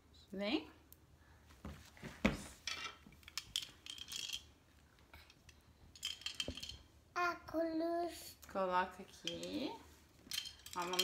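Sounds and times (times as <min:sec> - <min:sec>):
plastic accessories clicking and clinking: 0:02.7 - 0:04.5, 0:05.2 - 0:06.9, 0:09.2 - 0:11.0.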